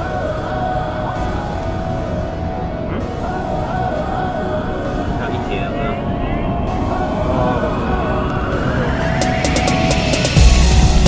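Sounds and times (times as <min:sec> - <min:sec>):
rising sweep: 0:00.0 - 0:11.0
sliding synth lines: 0:00.0 - 0:11.0
steady low rumble: 0:00.0 - 0:11.0.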